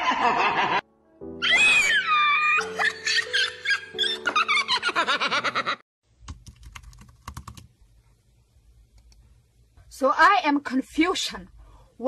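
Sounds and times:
fast typing on keyboard: 0:06.2 - 0:07.7.

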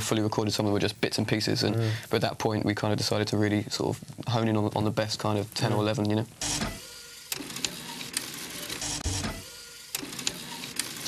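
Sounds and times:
clicking mechanical loop: 0:06.4 - 0:11.0.

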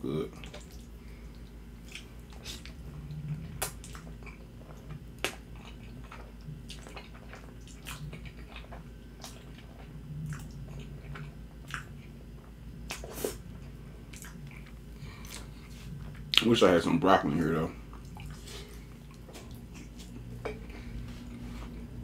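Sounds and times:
wet chewing: 0:00.3 - 0:16.5, 0:17.8 - 0:21.9.

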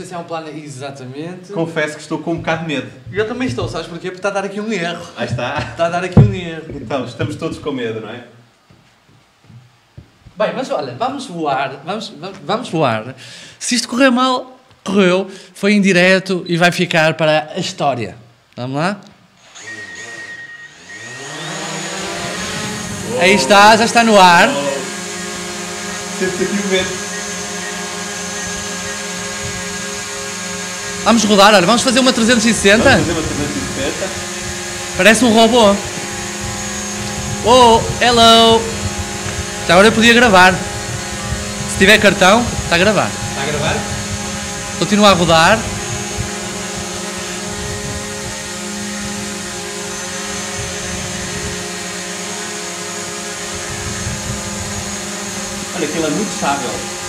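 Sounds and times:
drone propellers whining: 0:19.4 - 0:57.0.

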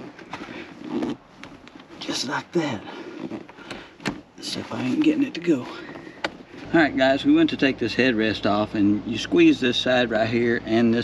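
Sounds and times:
headrest clicking and knocking: 0:03.2 - 0:04.3.

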